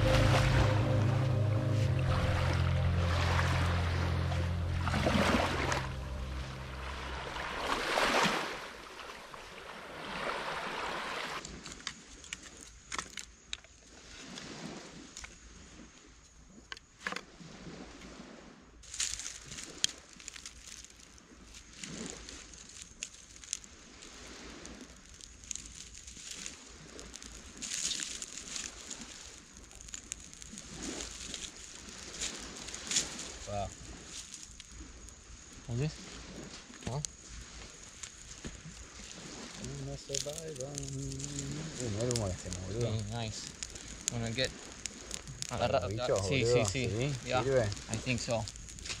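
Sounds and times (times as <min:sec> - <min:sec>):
faint high-pitched tone: 0:00.0 - 0:07.8
small waves lapping on shore: 0:00.0 - 0:49.0
dry twigs snapping: 0:18.8 - 0:34.8, 0:37.8 - 0:45.8, 0:46.7 - 0:49.0.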